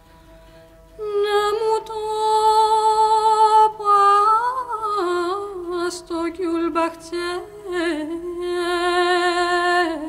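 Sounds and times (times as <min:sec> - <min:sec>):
woman singing a lullaby: 0:01.0 - 0:10.0.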